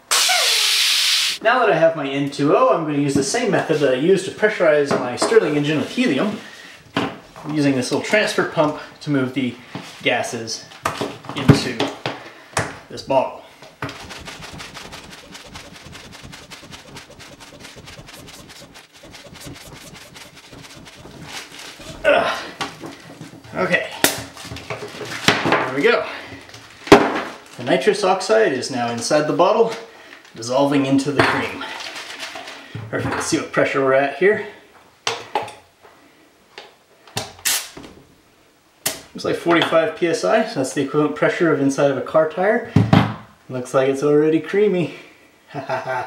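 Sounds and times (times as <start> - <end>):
hand pump pumping gas: 13.8 - 22.0.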